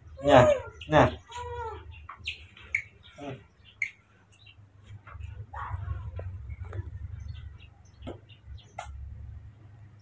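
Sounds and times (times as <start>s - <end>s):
baby monkey coo: 0.2s - 2.0s.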